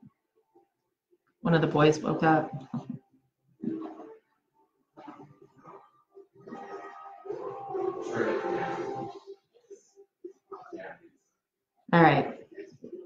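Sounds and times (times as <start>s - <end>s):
film soundtrack music: 5.0s - 9.4s
television voices: 5.0s - 13.0s.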